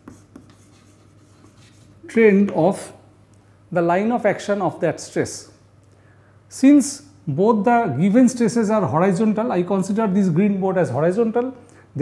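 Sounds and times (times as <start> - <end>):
chalk scratching on chalkboard: 0.0 - 2.6
chalk tapping on chalkboard: 0.0 - 2.6.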